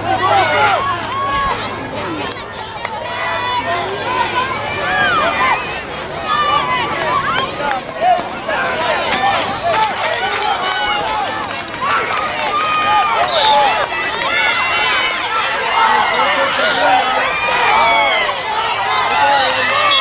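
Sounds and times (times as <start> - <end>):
many voices shouting and yelling: 0.0 - 20.0.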